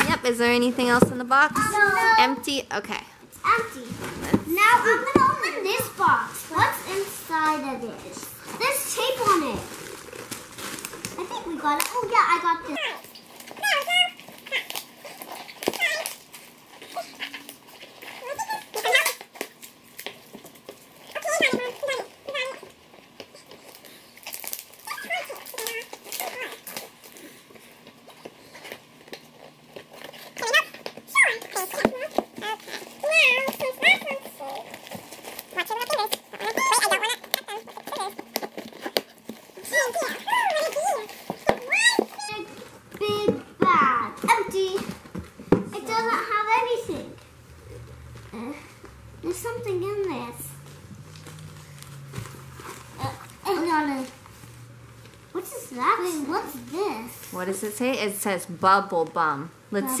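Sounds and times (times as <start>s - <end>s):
children's voices: 1.5s - 2.4s, 3.4s - 9.8s, 11.2s - 14.6s, 30.4s - 34.8s, 39.6s - 45.0s
crinkling: 3.5s - 59.3s
hands scratching packing tape: 12.8s - 42.4s.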